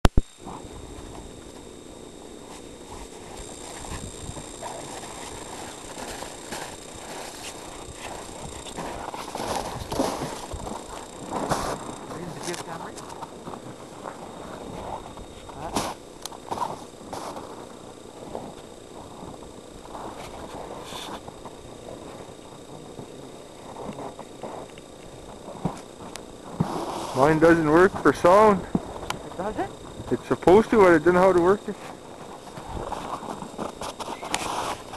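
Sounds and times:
muffled voices: 8.4s - 13.3s, 27.1s - 31.9s.

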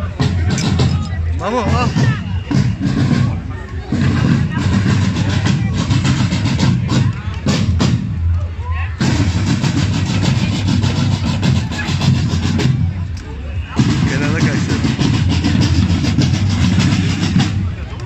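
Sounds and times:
crowd voices: 0.0s - 18.0s
marching band drums: 0.0s - 18.0s.

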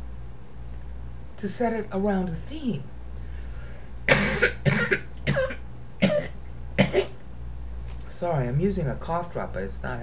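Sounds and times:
person coughing: 4.1s - 7.2s.

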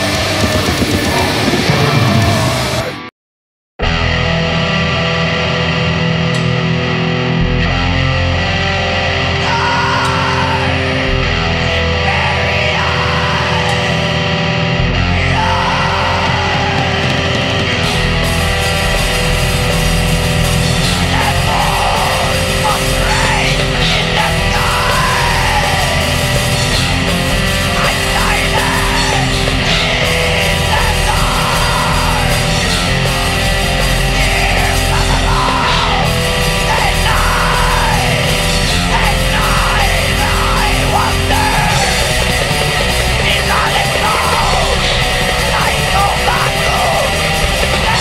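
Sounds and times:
distorted guitars: 0.0s - 3.1s, 3.8s - 48.0s
drum kit: 0.0s - 3.1s, 5.8s - 48.0s
extreme metal song: 0.0s - 3.1s, 3.8s - 48.0s.

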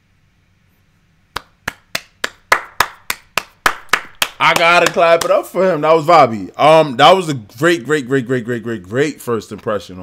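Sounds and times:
person clapping hands: 1.3s - 5.5s.

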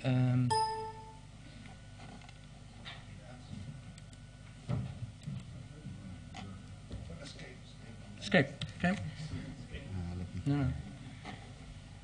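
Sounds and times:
room murmur: 1.1s - 12.0s.

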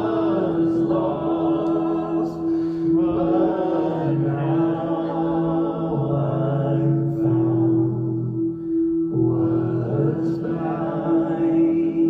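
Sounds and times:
sustained organ note: 0.0s - 12.0s
voices singing held notes: 0.0s - 12.0s.

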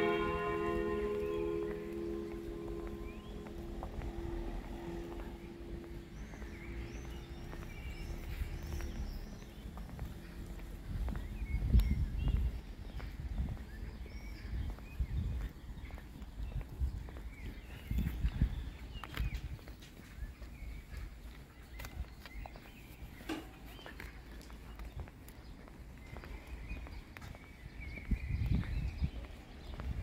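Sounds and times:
small birds chirping: 0.0s - 3.9s, 4.8s - 30.0s
footsteps on paved path: 0.0s - 30.0s
wind rumbling on microphone: 2.0s - 22.5s, 24.9s - 30.0s.

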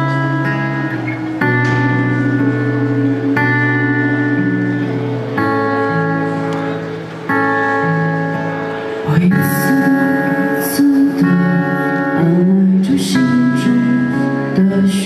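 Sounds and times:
bass guitar: 0.0s - 15.0s
sustained guitar chords: 0.0s - 15.0s.

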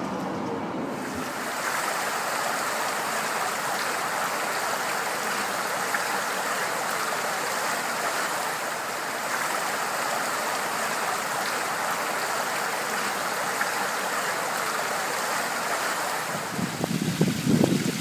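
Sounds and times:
fountain water splashing: 0.9s - 18.0s.

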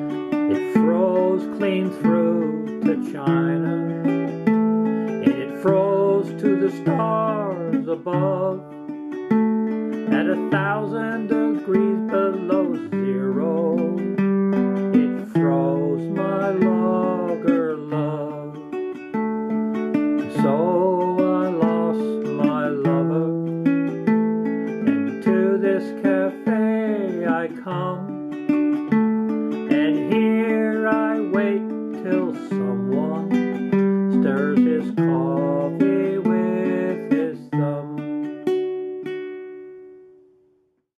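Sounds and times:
man singing: 0.0s - 8.8s, 10.0s - 18.9s, 20.2s - 24.0s, 24.8s - 28.3s, 29.5s - 38.3s
ukulele strumming: 0.0s - 40.6s.

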